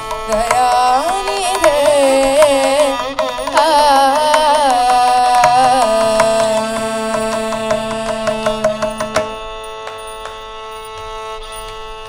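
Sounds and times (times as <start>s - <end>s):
drum strokes: 0.0s - 10.6s
steady drone: 5.3s - 10.6s
sung held note: 5.4s - 10.5s.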